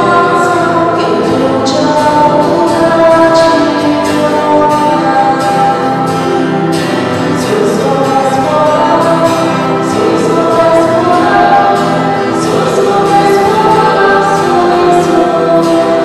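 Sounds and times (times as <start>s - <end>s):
choir singing a hymn: 0.0s - 16.0s
musical accompaniment: 0.0s - 16.0s.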